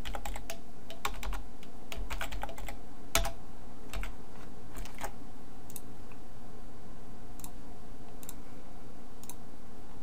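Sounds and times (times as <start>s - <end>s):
typing on computer keyboard: 0.0s - 4.1s, 4.8s - 5.1s.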